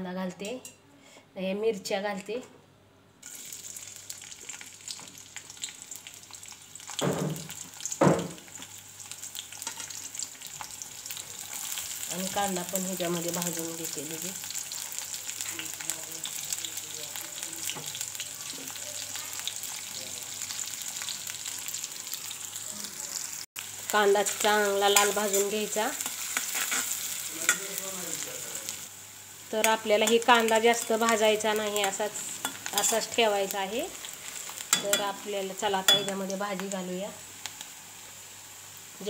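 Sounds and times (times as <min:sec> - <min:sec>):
chillies sizzling in hot oil: 0:03.2 - 0:39.0
knocks on metal pan: 0:07.0 - 0:08.4.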